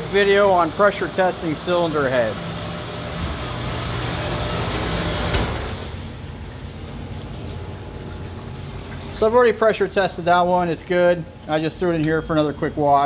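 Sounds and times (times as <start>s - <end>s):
parts washer rushing and humming: 0.0s - 13.0s.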